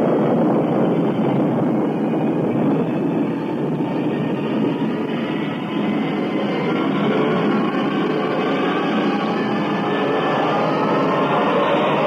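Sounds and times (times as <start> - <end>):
rocket engines roaring: 0.0 - 12.0.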